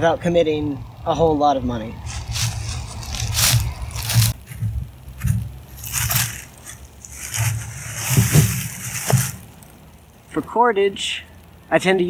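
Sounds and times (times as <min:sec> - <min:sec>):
dry leaves rustling: 0:02.0 - 0:09.8
low handling thumps: 0:02.1 - 0:09.6
clothing rustling: 0:05.2 - 0:09.5.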